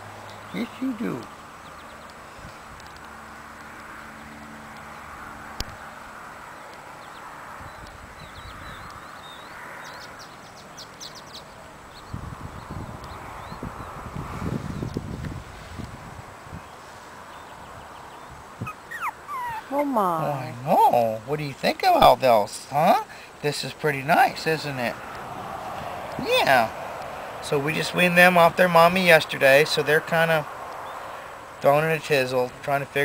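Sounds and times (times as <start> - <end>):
low rumbling on microphone: 12.0 - 16.7.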